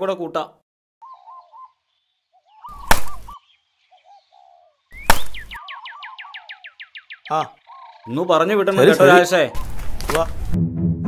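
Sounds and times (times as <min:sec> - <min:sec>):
bird chirps: 0:01.0 - 0:08.3
falling bird whistles: 0:02.5 - 0:03.5, 0:04.9 - 0:07.9.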